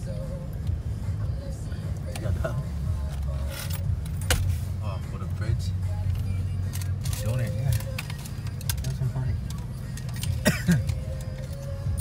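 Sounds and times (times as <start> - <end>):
vehicle engine running: 0.0 - 12.0.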